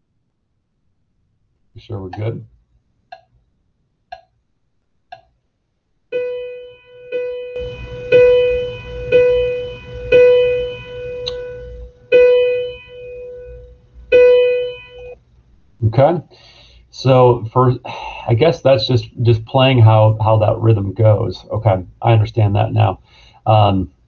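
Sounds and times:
soft ticks: 2.1s - 2.4s, 3.1s - 3.4s, 4.1s - 4.4s, 5.1s - 5.4s
synthesized piano tone: 6.1s - 15.2s.

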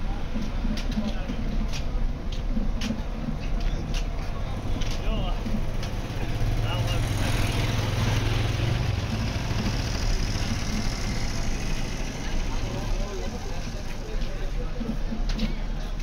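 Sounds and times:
people talking: 0.0s - 2.0s, 2.8s - 16.0s
low engine hum: 3.1s - 15.2s.

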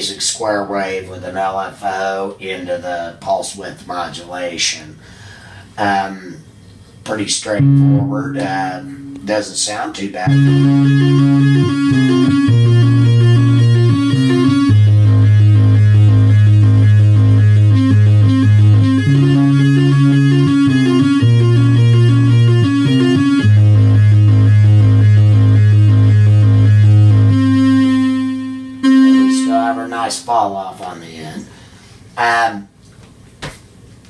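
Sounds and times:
sustained low synth note: 7.6s - 9.6s, 10.2s - 30.3s
synthesizer square-wave notes: 7.6s - 9.6s, 10.2s - 30.4s.

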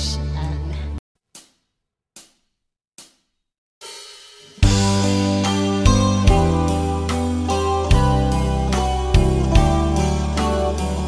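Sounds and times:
hi-hat taps: 1.3s - 3.3s.

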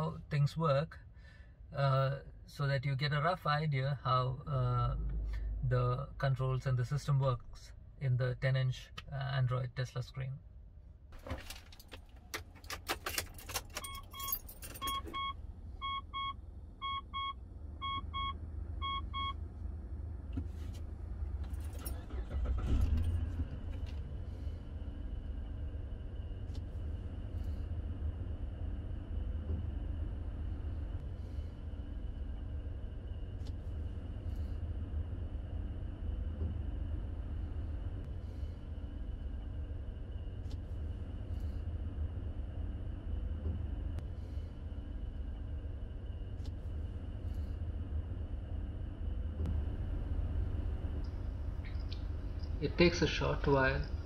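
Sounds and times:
car engine starting and idling: 11.1s - 54.0s
keys jangling in ignition lock: 11.5s - 15.1s
dashboard warning chime beeping: 13.7s - 19.4s.

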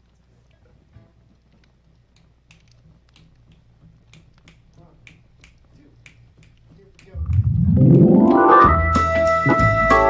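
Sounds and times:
faint finger snaps: 2.2s - 7.5s
low steady hum: 7.1s - 8.7s.

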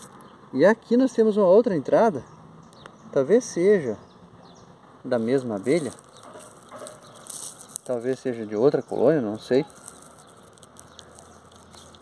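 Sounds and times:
faint outdoor background noise: 0.0s - 12.0s
soft clicks and rustles: 5.4s - 8.3s, 9.5s - 12.0s.

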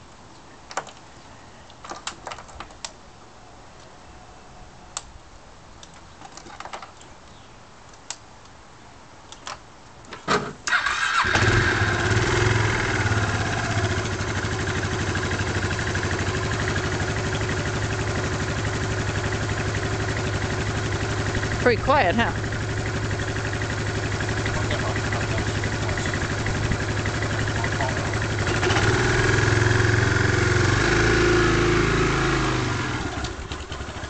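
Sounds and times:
scooter engine starting and idling: 10.7s - 34.0s.

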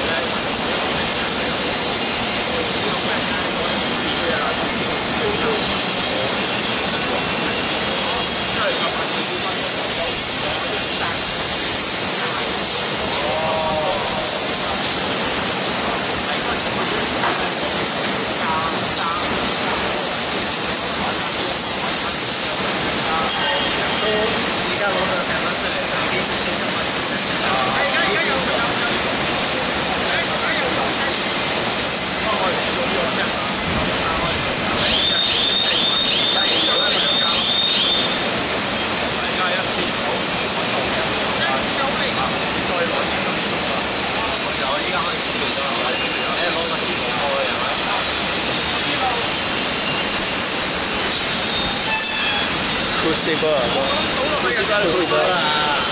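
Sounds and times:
loud roar of foundry machinery: 0.0s - 55.9s.

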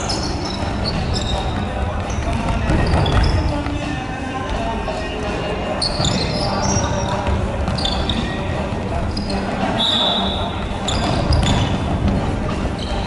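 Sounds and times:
players calling out: 0.0s - 13.0s
sneakers squeaking on wooden floor: 0.0s - 13.0s.

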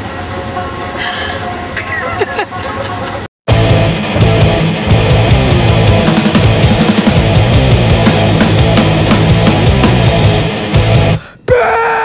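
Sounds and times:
road and engine noise: 0.0s - 10.6s
woman laughing: 1.8s - 3.3s.

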